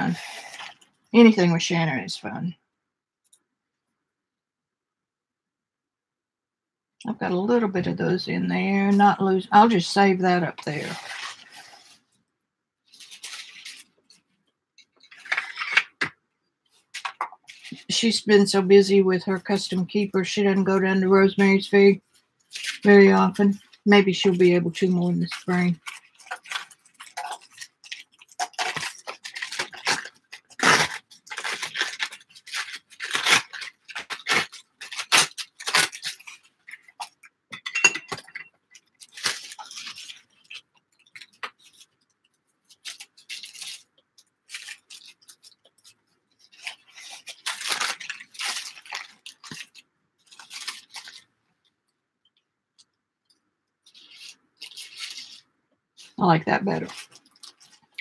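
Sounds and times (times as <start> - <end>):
paper rustling: 10.4 - 12.1, 12.9 - 18.1, 20.6 - 37.3, 38.1 - 51.4, 53.8 - 58.0
paper tearing along a ruler: 28.4 - 36.2.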